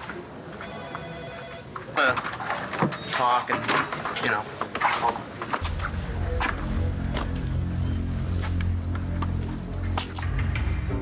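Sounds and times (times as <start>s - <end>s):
telephone ringing: 0.6s - 1.8s.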